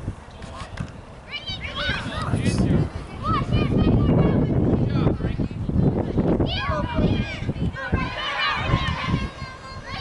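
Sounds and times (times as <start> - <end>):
low rumble of field noise: 0.0 - 10.0
young voices shouting: 1.3 - 4.8, 6.4 - 10.0.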